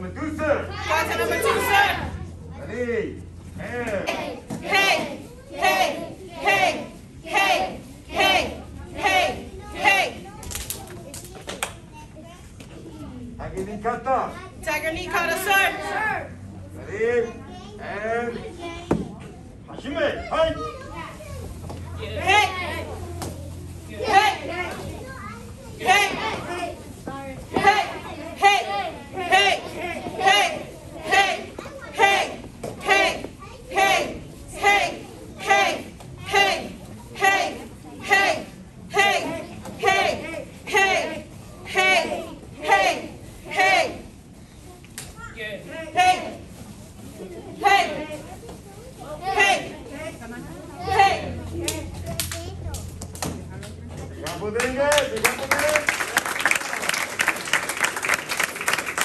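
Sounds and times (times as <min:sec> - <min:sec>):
murmured voices: 0:00.0 - 0:11.8, 0:14.4 - 0:59.0.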